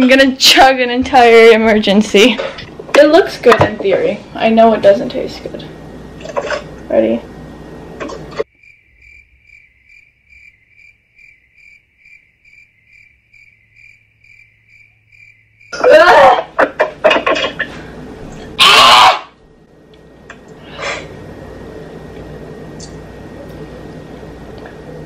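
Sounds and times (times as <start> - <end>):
cricket chirping: 8.4 - 16.0.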